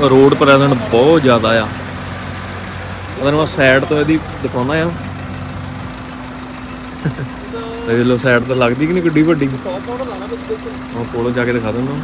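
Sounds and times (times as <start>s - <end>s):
car engine humming: 0.0s - 12.0s
man's voice: 7.4s - 12.0s.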